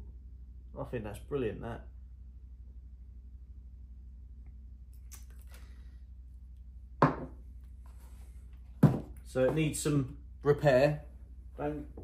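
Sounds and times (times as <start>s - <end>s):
steady low hum: 0.0s - 12.0s
knocks on wooden table: 7.0s - 7.4s, 8.8s - 9.1s.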